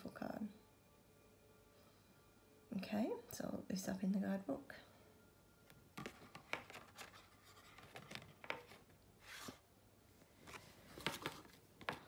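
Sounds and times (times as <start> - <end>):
card and paper taps and rustles: 6.0 - 9.6, 10.4 - 12.0.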